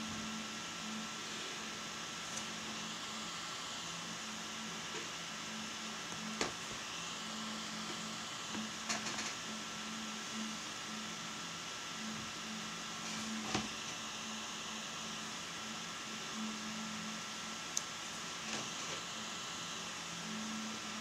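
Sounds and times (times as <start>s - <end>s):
room hiss and low hum: 0.0s - 21.0s.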